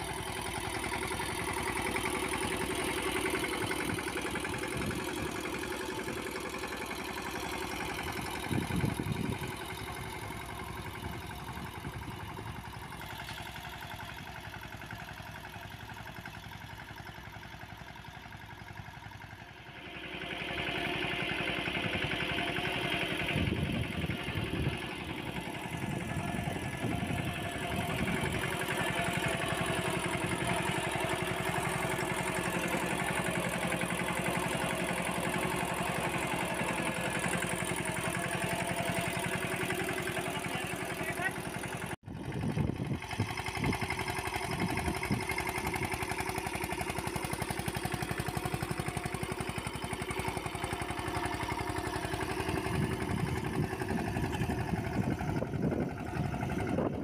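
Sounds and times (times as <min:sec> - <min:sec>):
tractor diesel engine running: 0:00.0 - 0:57.0.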